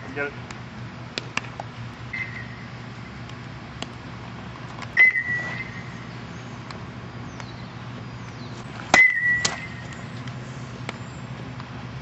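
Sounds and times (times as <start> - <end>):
aluminum bat striking baseball: 8.9 - 10.0.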